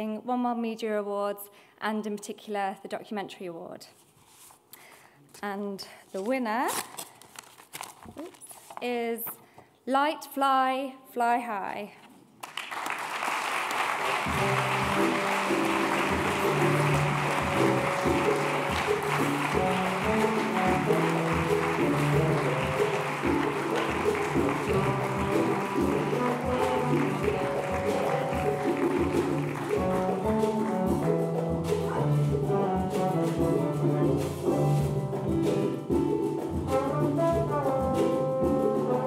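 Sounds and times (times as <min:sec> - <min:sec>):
audience applauding: 0:12.4 - 0:32.0
music playing: 0:13.8 - 0:39.0.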